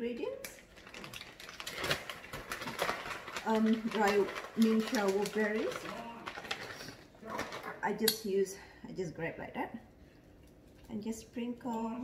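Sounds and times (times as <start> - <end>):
plastic pouch crinkling: 0.6 - 7.8.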